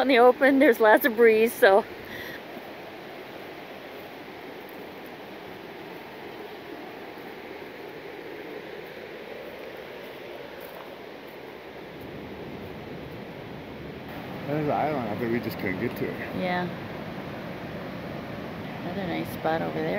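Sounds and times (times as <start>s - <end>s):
fast-flowing river rushing: 0.1s - 19.9s.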